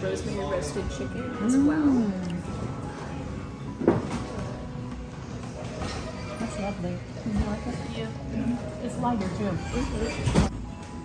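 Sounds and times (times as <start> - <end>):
background chatter: 0.0 - 10.5.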